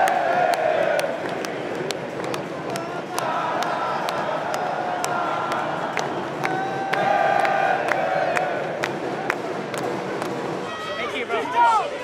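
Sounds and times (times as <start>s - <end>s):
crowd clapping in unison: 0.0s - 10.6s
crowd chanting: 2.7s - 8.8s.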